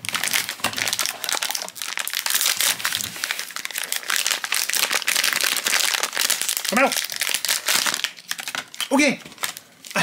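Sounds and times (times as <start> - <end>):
foil wrapper tearing and crinkling: 0.0 - 10.0.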